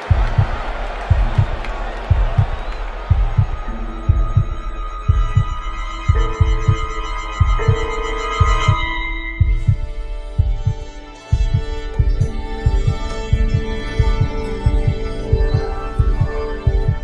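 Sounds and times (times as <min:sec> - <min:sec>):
ambient music chords: 0:00.0 - 0:17.0
heartbeat double thump: 0:00.1 - 0:17.0.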